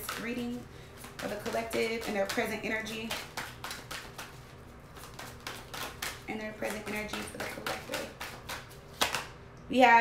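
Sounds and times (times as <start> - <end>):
cards being shuffled: 3.0 - 9.4.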